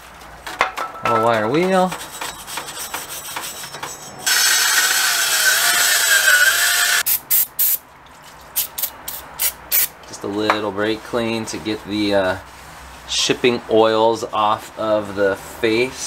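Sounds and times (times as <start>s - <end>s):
hand scraping on rusty metal: 1.2s - 4.3s
cordless drill with wire wheel: 4.2s - 7.1s.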